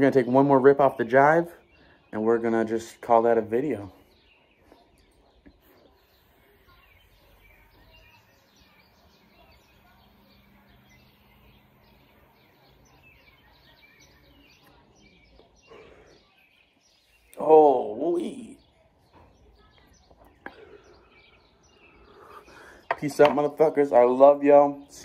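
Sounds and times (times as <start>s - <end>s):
distant bird chirps: 0.0s - 25.0s.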